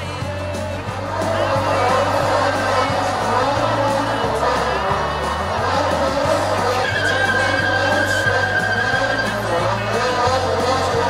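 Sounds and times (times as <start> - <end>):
pop music with bass line: 0.0 - 11.0
long held high note: 6.8 - 9.9.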